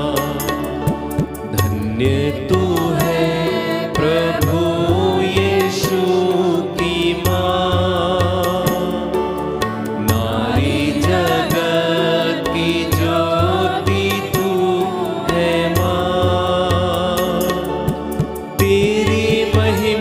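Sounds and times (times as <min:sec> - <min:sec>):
instrumental accompaniment with beat: 0:00.0 - 0:20.0
women's choir singing a hymn: 0:02.8 - 0:07.9, 0:10.2 - 0:16.7, 0:18.9 - 0:20.0.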